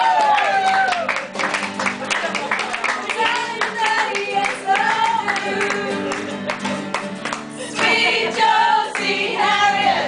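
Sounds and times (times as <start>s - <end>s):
hands clapping in rhythm: 0.0s - 9.7s
acoustic guitar song: 0.0s - 10.0s.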